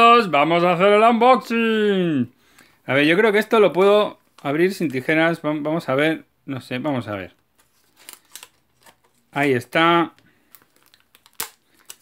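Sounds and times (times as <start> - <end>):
plastic wrap and card rustling: 2.6 - 5.6, 7.0 - 12.0.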